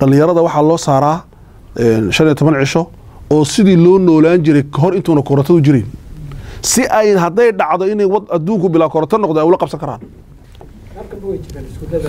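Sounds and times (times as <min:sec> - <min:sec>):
man speaking: 0:00.0 - 0:06.0, 0:06.6 - 0:10.1, 0:10.9 - 0:12.0.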